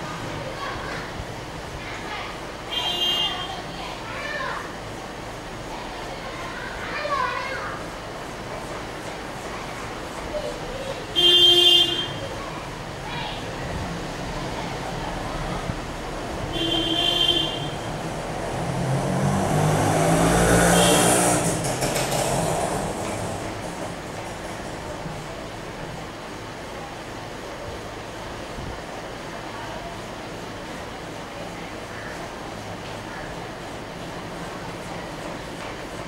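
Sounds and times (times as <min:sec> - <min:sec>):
children calling: 0:00.0 - 0:36.0
passing vehicle engine: 0:13.6 - 0:25.3.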